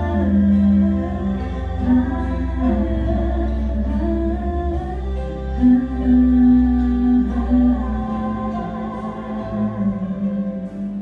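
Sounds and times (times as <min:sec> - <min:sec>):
deep bass: 0:00.0 - 0:11.0
instrumental accompaniment: 0:00.0 - 0:11.0
women singing humming harmonies: 0:00.0 - 0:11.0.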